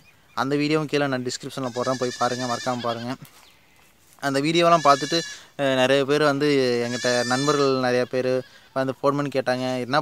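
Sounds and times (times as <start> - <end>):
man speaking: 4.2 - 10.0.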